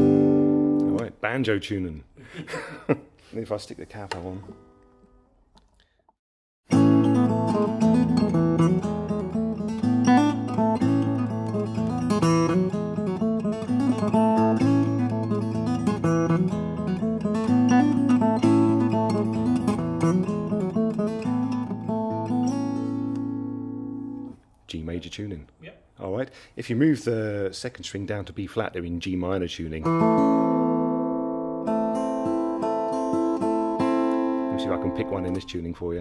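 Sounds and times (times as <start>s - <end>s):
fingerpicked acoustic guitar: 0.0s - 1.0s, 6.7s - 24.4s, 29.8s - 35.4s.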